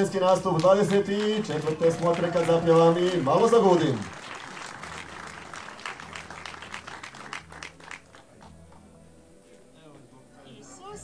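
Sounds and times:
audience applauding: 0.0 - 9.0.

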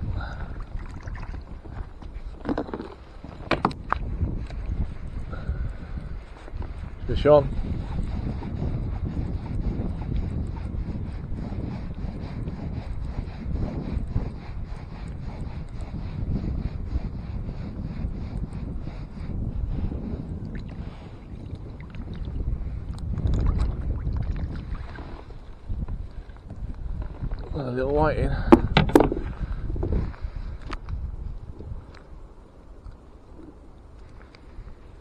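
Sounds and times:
wind noise on microphone: 0.0 - 35.0.

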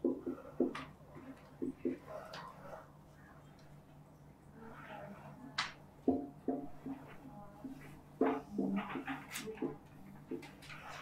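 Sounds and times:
marker scratching on whiteboard: 0.0 - 11.0.

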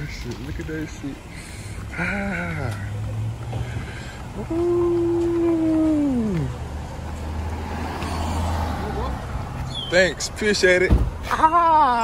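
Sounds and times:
man's drawn-out ooh: 4.4 - 6.6.

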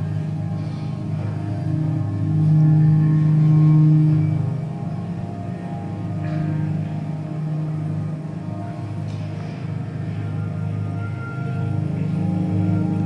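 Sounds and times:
electronic drone music: 0.0 - 13.0.

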